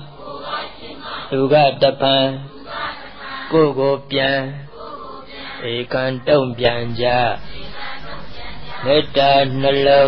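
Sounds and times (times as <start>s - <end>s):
man chanting: 1.3s - 2.5s, 5.6s - 7.7s, 8.7s - 10.0s.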